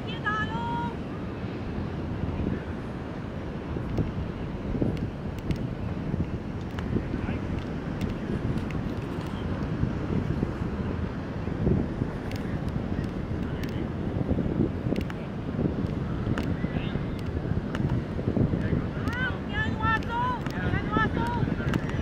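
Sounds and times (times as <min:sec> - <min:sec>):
wind buffeting microphone: 0:00.0 - 0:22.0
faint clicks: 0:04.9 - 0:06.9, 0:12.2 - 0:13.8, 0:18.6 - 0:19.3.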